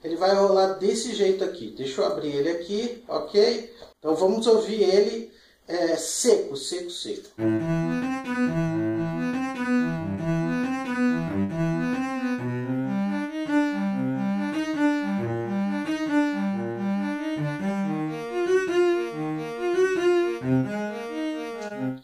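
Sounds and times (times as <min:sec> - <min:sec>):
cello melody: 0:07.4 - 0:22.0.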